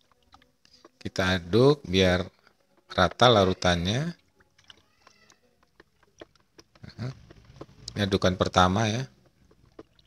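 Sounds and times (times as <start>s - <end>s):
water sloshing in bucket: 0.0s - 10.0s.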